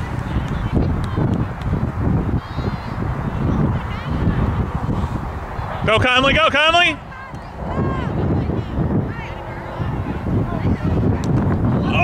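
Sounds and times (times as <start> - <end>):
wind buffeting microphone: 0.0 - 12.0
loud shout: 6.4 - 9.3, 11.8 - 12.0.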